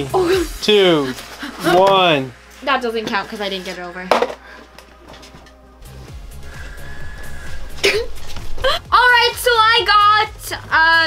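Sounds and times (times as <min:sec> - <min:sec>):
background music with bass line: 0:00.0 - 0:02.9, 0:04.7 - 0:11.0.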